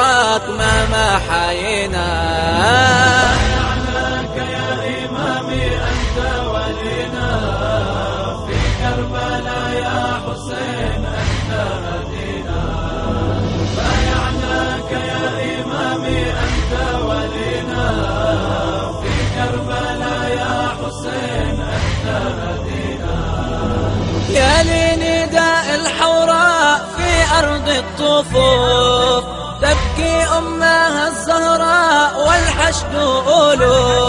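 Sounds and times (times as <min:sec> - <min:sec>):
layered voices chanting: 0:00.0 - 0:34.0
low bass: 0:00.6 - 0:25.6, 0:26.9 - 0:30.7.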